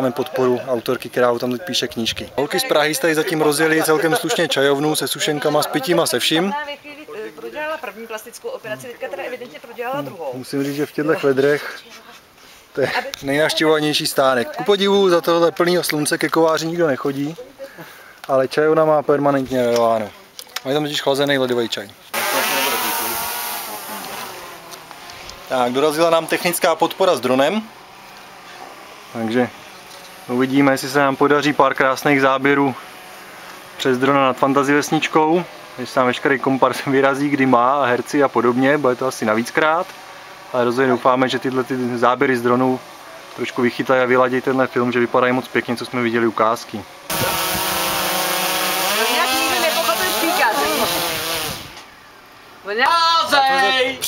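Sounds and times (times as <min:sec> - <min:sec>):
drone propellers buzzing: 0:22.1 - 0:36.1, 0:46.9 - 0:51.8.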